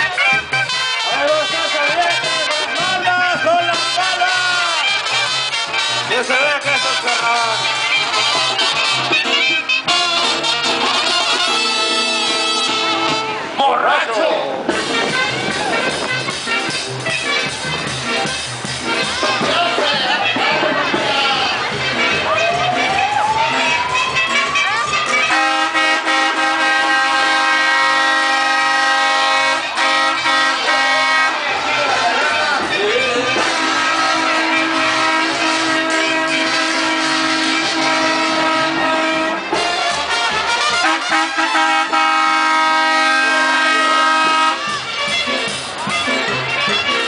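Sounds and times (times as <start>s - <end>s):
brass band music: 0.0s - 47.0s
crowd noise: 0.0s - 47.0s
vehicle air horn blast: 0.1s - 13.6s, 23.8s - 47.0s.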